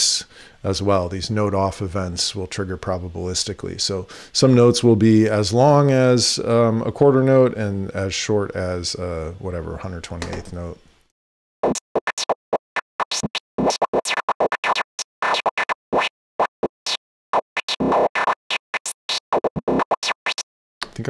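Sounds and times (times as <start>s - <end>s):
synthesized noise lead stutter: 11.6s - 12.4s, 13.0s - 20.4s.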